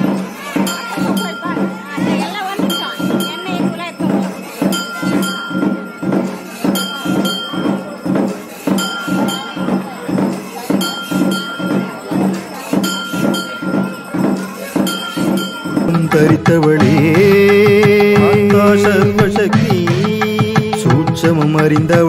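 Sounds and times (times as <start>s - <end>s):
bell ringing: 0.0s - 22.0s
drum beats: 0.0s - 22.0s.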